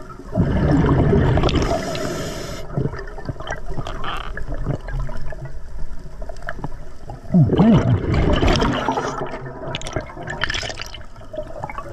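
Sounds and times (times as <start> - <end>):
bubbling water: 0.0 - 11.9
diver breath and bubbles: 0.0 - 11.9.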